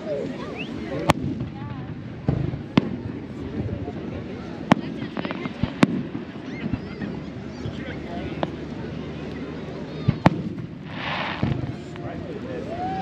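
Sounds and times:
crowd chatter: 0:00.0 - 0:13.0
small firework pops: 0:00.2 - 0:03.2, 0:04.6 - 0:07.1, 0:08.3 - 0:08.6, 0:09.2 - 0:12.2
firework shells bursting: 0:10.1 - 0:12.2.

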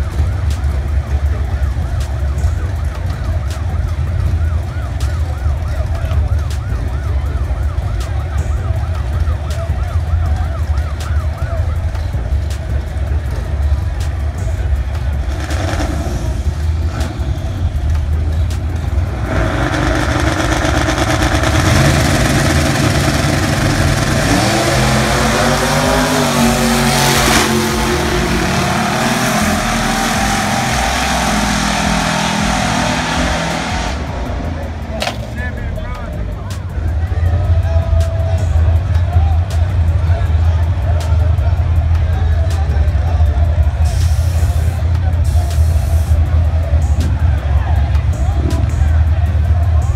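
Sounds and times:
cars accelerating: 0:00.0 - 0:49.9
drag car engines rumbling: 0:00.0 - 0:49.9
warbling siren-like tone: 0:19.2 - 0:35.4.

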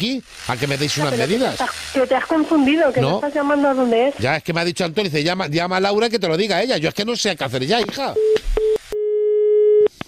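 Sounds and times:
steady telephone tone: 0:08.2 - 0:09.9.

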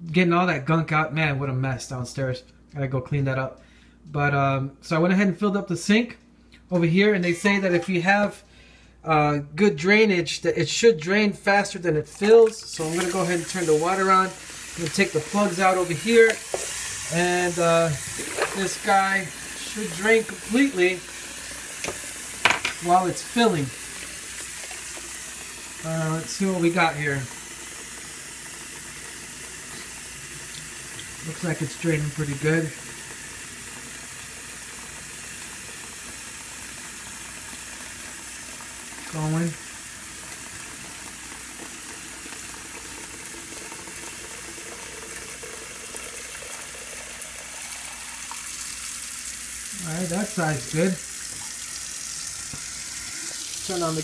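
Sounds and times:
faucet running into sink: 0:12.2 - 0:54.0.

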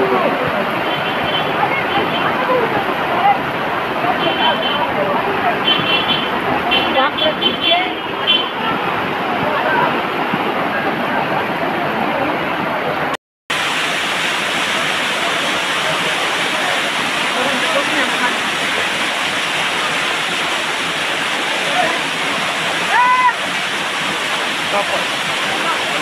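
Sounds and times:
people's voices: 0:00.0 - 0:13.2, 0:14.6 - 0:26.0
floodwater rushing: 0:00.0 - 0:26.0.

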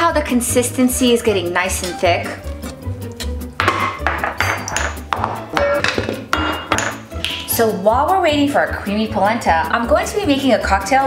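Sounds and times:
background music with beat: 0:01.4 - 0:07.9.

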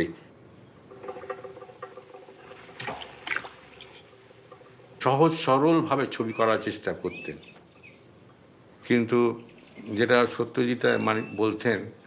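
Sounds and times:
low steady hum: 0:00.0 - 0:11.0
object splashing into pond: 0:00.9 - 0:05.0.

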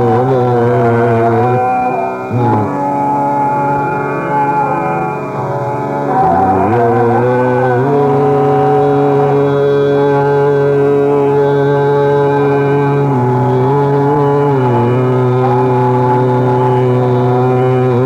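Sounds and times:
man singing long notes: 0:00.0 - 0:18.0
steady drone: 0:00.0 - 0:18.0.

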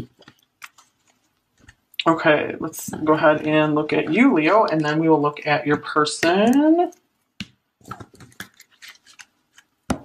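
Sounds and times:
cards being shuffled: 0:07.8 - 0:09.8.

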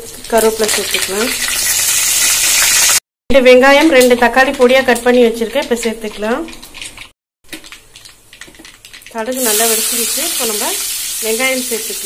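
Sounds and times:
spices sizzling in hot oil: 0:00.0 - 0:03.0, 0:03.8 - 0:12.0.

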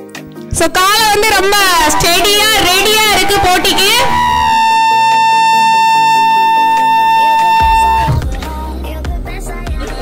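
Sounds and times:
deep bass line: 0:00.6 - 0:08.6
long high sustained note: 0:00.9 - 0:08.3
lower accompanying notes: 0:00.9 - 0:08.3.

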